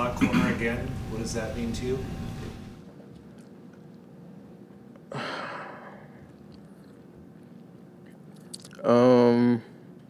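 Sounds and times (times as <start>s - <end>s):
man saying um: 8.8s - 9.7s.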